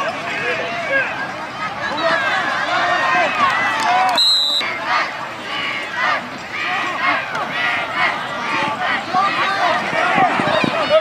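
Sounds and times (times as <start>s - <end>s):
stadium crowd cheering and yelling: 0.0s - 11.0s.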